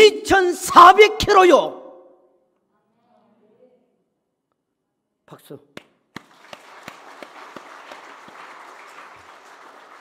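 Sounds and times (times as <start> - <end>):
crowd applauding: 6.1 - 10.0.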